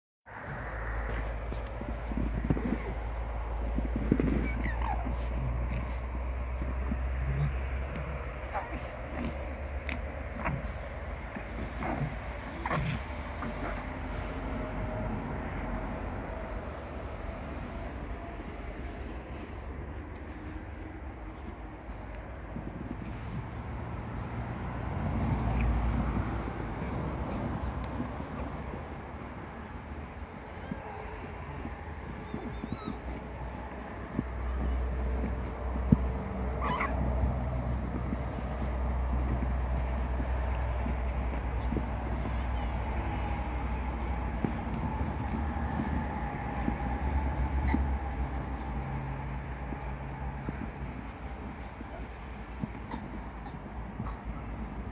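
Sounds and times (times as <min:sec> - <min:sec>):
foxes whining squeals: 0:04.0 - 0:06.0, 0:08.4 - 0:09.5, 0:30.4 - 0:34.8, 0:36.5 - 0:37.2, 0:47.1 - 0:48.9
fox whining squeals: 0:04.2 - 0:05.9, 0:31.9 - 0:33.3, 0:36.6 - 0:37.0.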